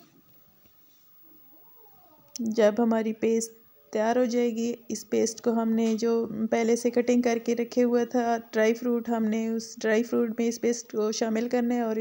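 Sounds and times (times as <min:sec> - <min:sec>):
faint wavering cry: 0:01.2 - 0:02.4.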